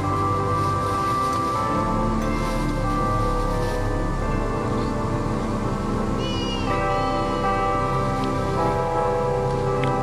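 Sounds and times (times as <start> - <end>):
organ chords: 0.0 - 10.0.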